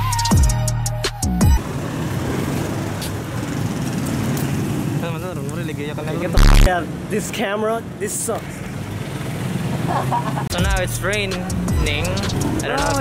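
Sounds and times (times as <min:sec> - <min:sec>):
music with drum beat: 0:00.0 - 0:01.6, 0:10.5 - 0:13.0
street traffic noise: 0:00.9 - 0:13.0
voices: 0:05.0 - 0:13.0.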